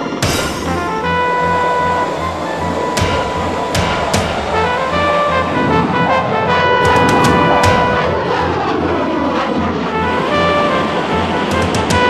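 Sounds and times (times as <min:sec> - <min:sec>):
background music: 0:00.0 - 0:12.0
jet aircraft roaring past: 0:00.0 - 0:12.0.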